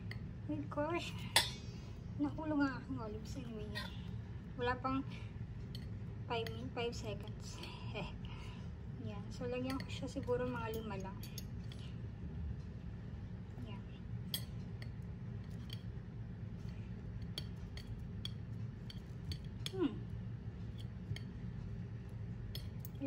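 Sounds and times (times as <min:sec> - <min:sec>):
low steady hum: 0:00.0 - 0:23.0
fork clinking against dishes: 0:14.3 - 0:15.9.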